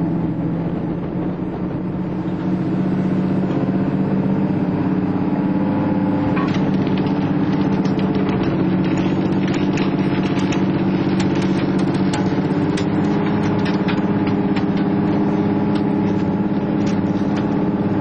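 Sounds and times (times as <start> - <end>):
engine and winch humming: 0.0 - 18.0
sharp clicks and ticks: 6.4 - 18.0.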